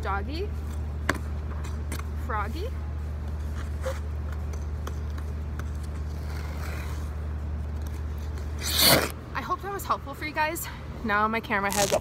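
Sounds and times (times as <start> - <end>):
skate scuffs on ice: 5.7 - 7.2, 8.2 - 9.2
ice skate blades scraping ice: 5.9 - 7.2, 8.2 - 9.2, 11.7 - 12.0.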